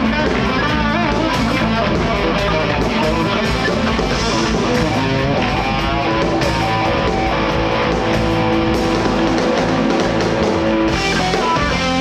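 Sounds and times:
electric guitars: 0.0s - 12.0s
live rock band playing: 0.0s - 12.0s.

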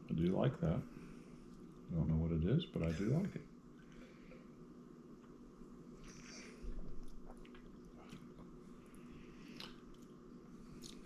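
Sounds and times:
steady low hum: 0.0s - 11.0s
lip smacks and tongue clicks: 7.0s - 8.6s, 9.5s - 10.2s, 10.8s - 11.0s.

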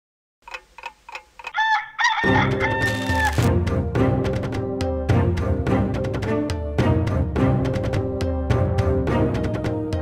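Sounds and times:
short irregular ticks: 0.4s - 1.6s
rooster crowing: 1.5s - 3.5s.

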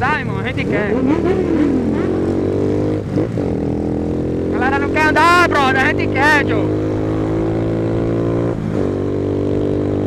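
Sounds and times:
motorcycle engine running: 0.0s - 10.0s
road and wind noise: 0.0s - 10.0s.

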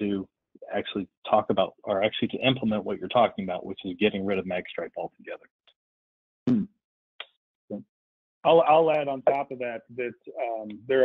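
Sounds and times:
person humming hmm: 6.5s - 6.7s.

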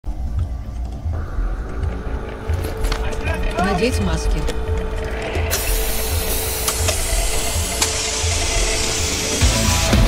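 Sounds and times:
pressurised gas hissing: 5.4s - 9.8s.

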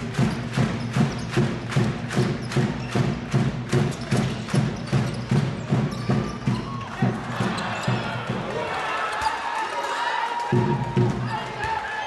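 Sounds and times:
crowd voices: 5.6s - 12.0s.

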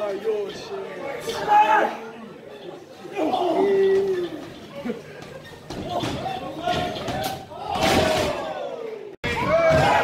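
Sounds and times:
crowd shouting and cheering: 5.7s - 10.0s.

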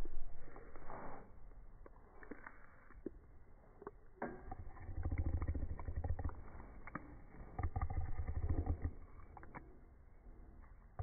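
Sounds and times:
dog chewing a treat: 1.8s - 10.0s.

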